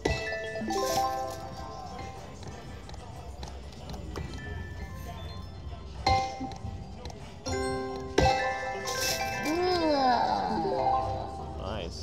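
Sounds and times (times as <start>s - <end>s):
slot machine electronic chimes: 0.0s - 2.4s, 4.3s - 12.0s.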